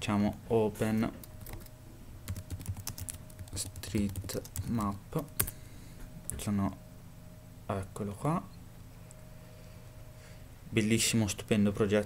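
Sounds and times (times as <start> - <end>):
computer keyboard typing: 1.3 - 1.7, 2.3 - 5.6.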